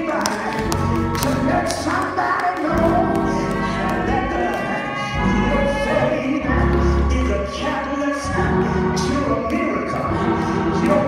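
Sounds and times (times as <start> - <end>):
gospel choir singing: 0.0 - 11.0
instrumental accompaniment: 0.0 - 11.0.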